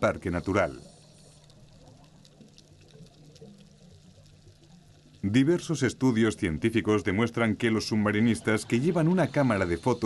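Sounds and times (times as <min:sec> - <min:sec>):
low steady hum: 0:00.0 - 0:10.0
soft watery wash: 0:00.0 - 0:10.0.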